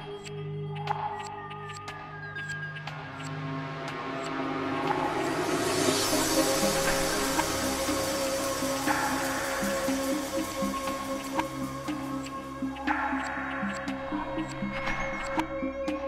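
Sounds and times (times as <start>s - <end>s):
ambient synth music: 0.0s - 16.0s
wash of noise: 4.1s - 11.9s.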